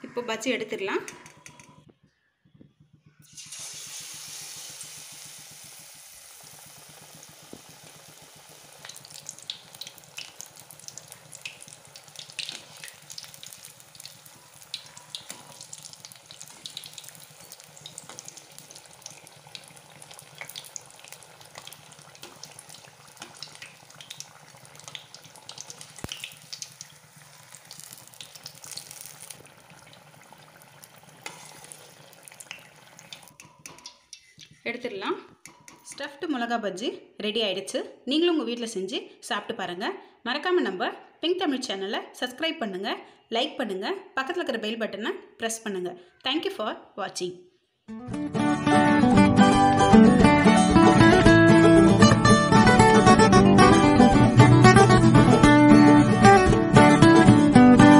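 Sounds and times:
food deep-frying in hot oil: 3.2 - 34.7
oil crackling and popping: 3.2 - 34.7.

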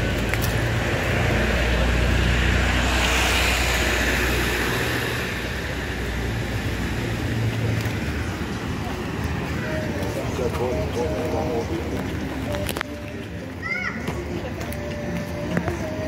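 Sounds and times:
low vehicle engine rumble: 0.0 - 16.0
tyre noise of passing vehicle: 0.0 - 16.0.

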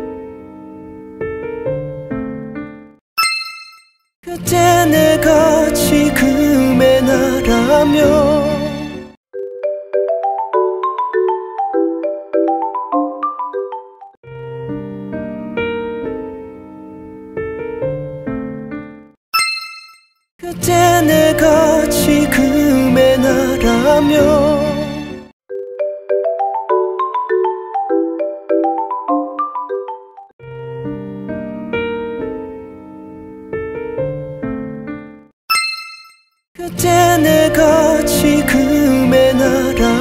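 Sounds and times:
piano music: 0.0 - 3.0, 4.4 - 9.2, 10.0 - 19.2, 20.6 - 25.3, 26.6 - 35.3, 36.7 - 40.0
soft piano music: 0.0 - 3.0, 14.3 - 19.1, 30.4 - 35.3
bright chime ding: 3.2 - 4.1, 19.4 - 20.2, 35.5 - 36.4.

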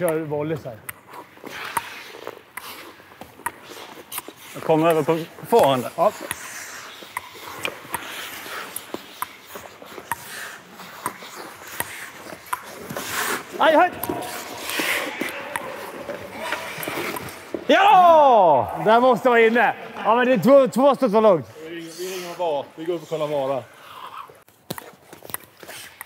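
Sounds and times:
ice skates scraping on ice: 1.0 - 18.1, 21.5 - 26.0.

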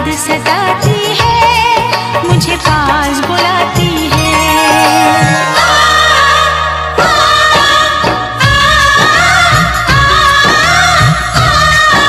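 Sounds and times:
film song remix with heavy drums: 0.0 - 12.0.

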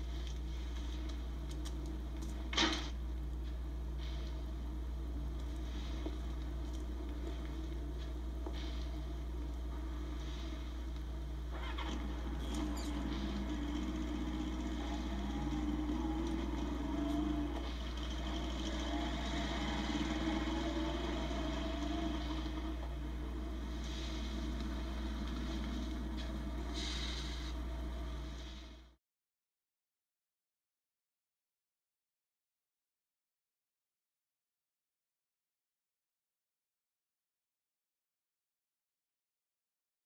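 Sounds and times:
low electrical hum: 0.0 - 29.0
motorcycle engines running: 11.5 - 28.5.

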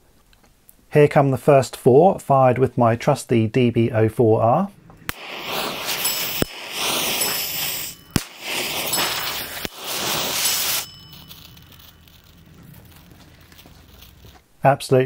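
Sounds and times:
igniter sharp pops: 5.1 - 9.9
fuse hissing: 5.1 - 11.0.

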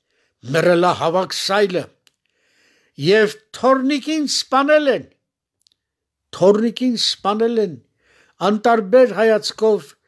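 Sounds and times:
man speaking: 0.4 - 2.1, 3.0 - 5.2, 6.2 - 10.0.

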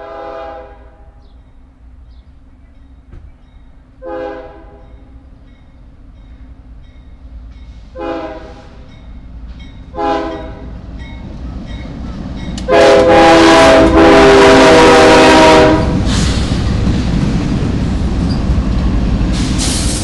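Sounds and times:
locomotive horn blasts: 0.0 - 1.2, 4.0 - 5.1, 7.9 - 8.9, 9.9 - 10.8, 12.6 - 16.1
train rolling: 0.0 - 20.0
diesel engines rumbling: 0.9 - 20.0.

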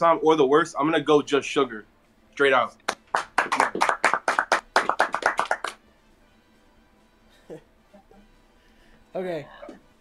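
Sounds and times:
hand claps: 2.8 - 5.8.

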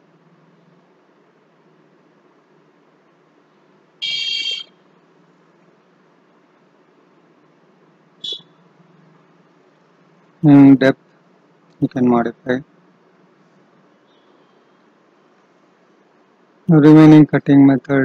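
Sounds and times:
faint low hum: 0.0 - 18.0
high-pitched electronic beeps: 8.2 - 8.6.

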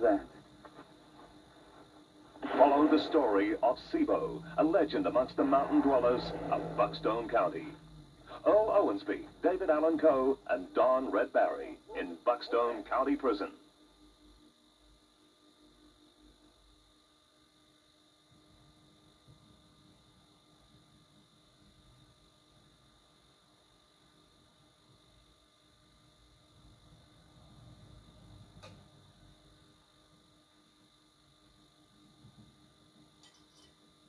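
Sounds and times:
television hum and hiss: 0.0 - 30.0.

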